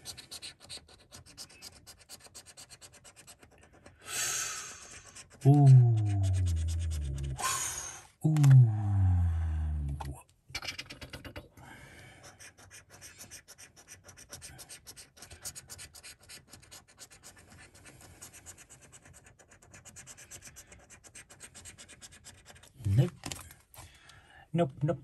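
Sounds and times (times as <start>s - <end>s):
coin scratching scratchcard: 0.0s - 3.9s, 4.7s - 7.4s, 12.3s - 23.0s.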